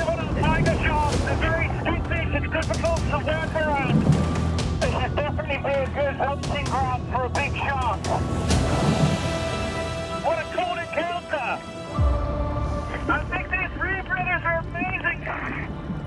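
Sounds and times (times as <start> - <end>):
deep low boom: 0.0 - 5.8
rush of noise: 0.0 - 6.0
tense background music: 0.0 - 16.0.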